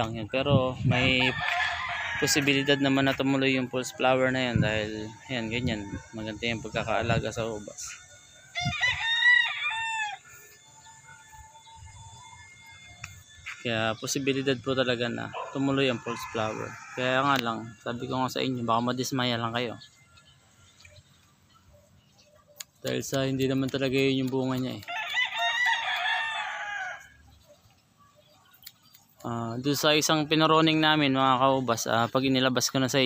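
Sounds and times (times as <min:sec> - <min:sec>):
rooster crowing: 0:00.9 - 0:06.7, 0:08.2 - 0:13.1, 0:15.1 - 0:18.1, 0:24.8 - 0:27.3.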